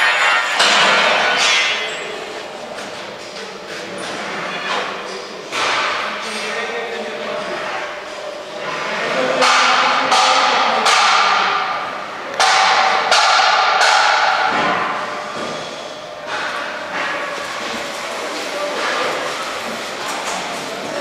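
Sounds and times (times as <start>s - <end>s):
echoing construction knocks: 0.0s - 2.0s, 9.3s - 15.6s.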